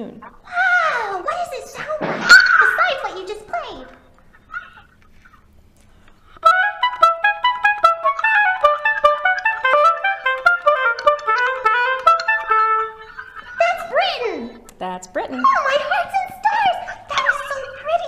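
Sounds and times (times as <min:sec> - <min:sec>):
oboe melody: 0:06.4 - 0:14.6.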